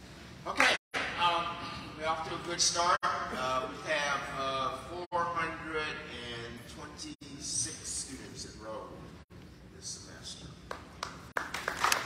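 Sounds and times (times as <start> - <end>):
man speaking through microphone: 0.5 - 10.6.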